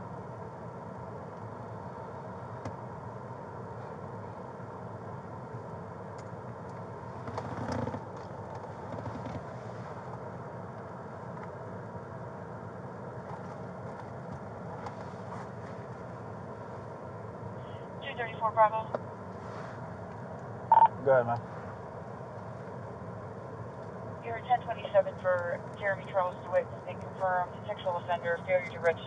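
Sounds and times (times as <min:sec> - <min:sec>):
car cabin engine idling hum: 0:00.0 - 0:29.0
soft rustle: 0:08.6 - 0:10.2, 0:13.3 - 0:16.1, 0:19.3 - 0:19.9
police radio electronic chirps: 0:20.7 - 0:21.0.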